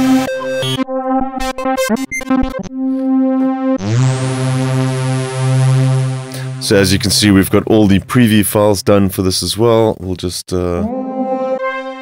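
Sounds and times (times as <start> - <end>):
sustained synth pad note: 10.8 - 12.0.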